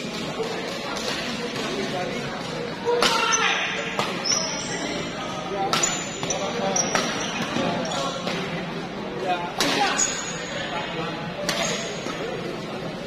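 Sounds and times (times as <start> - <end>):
crowd chatter: 0.0 - 13.0
court shoes squeaking: 0.1 - 9.0, 9.6 - 12.6.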